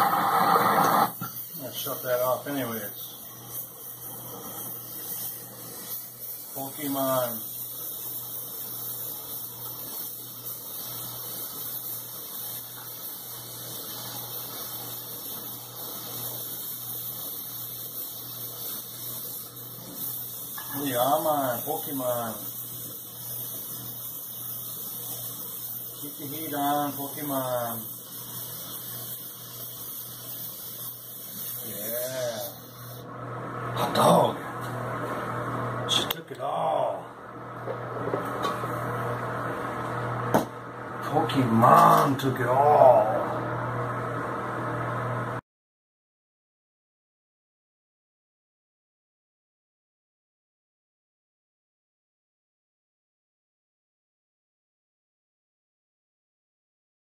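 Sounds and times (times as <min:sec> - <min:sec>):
gas torch flame hissing: 0:00.0 - 0:37.0, 0:37.6 - 0:45.4.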